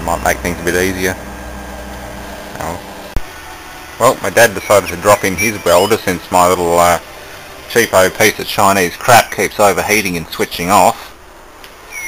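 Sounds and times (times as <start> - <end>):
low motor-like hum: 0.0 - 9.0.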